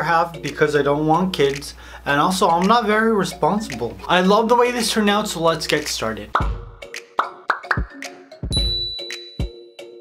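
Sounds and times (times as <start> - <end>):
bright musical notes: 0.0 - 10.0
high held ding: 8.5 - 9.8.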